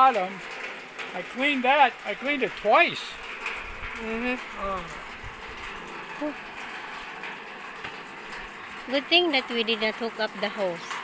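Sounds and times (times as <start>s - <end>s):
water pump running: 0.0s - 11.0s.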